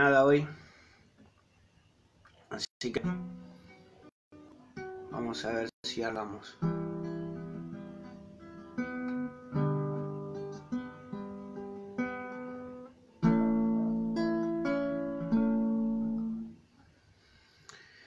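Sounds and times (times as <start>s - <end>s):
acoustic guitar strummed chords: 2.8s - 3.8s, 4.4s - 16.6s.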